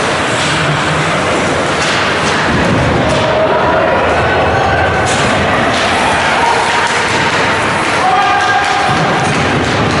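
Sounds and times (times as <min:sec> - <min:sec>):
hockey sticks and puck knocking: 0:01.6 - 0:03.4, 0:05.1 - 0:10.0
spectators shouting: 0:03.0 - 0:10.0.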